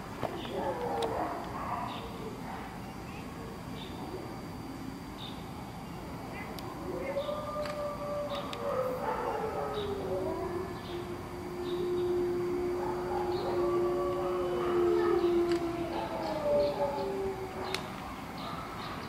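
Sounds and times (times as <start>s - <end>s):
animals howling together: 0.4s - 2.8s, 6.3s - 19.0s.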